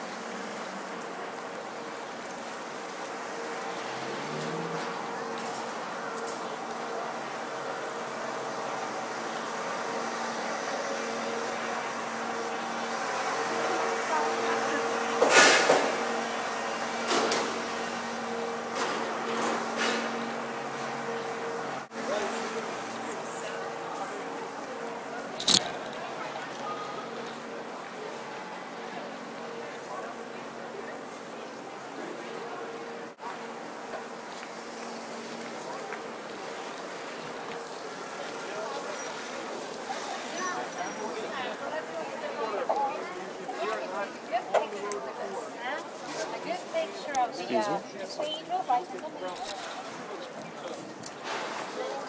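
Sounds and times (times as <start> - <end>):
vehicle engine hum: 0.0 - 41.0
passers-by talking: 0.0 - 52.0.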